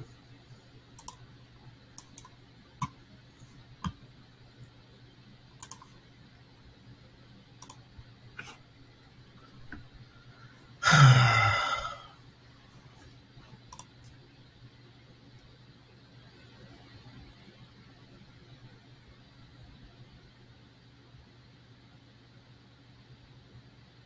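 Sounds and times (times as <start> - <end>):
computer mouse clicks: 1.0 - 1.2, 1.9 - 3.0, 5.6 - 6.0, 7.6 - 8.6, 13.6 - 14.2
person sighing: 10.8 - 12.2.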